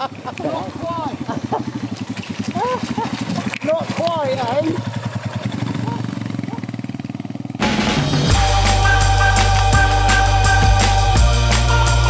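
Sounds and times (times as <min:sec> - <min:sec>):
motorcycle engine running: 0:00.0 - 0:12.0
organ-like chords with deep bass: 0:07.6 - 0:12.0.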